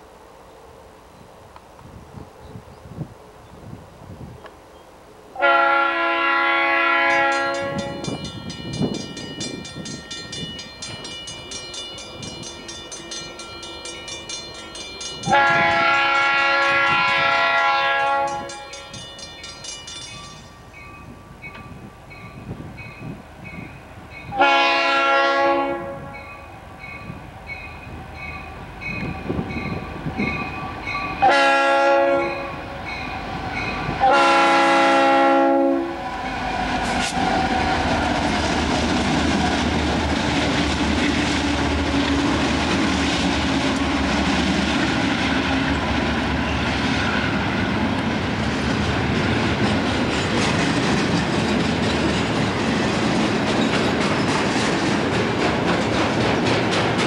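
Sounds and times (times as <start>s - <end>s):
train rumbling: 0.0s - 57.0s
train air horn chord: 5.4s - 8.1s, 15.2s - 18.9s, 24.3s - 26.4s, 31.2s - 32.8s, 34.0s - 36.1s.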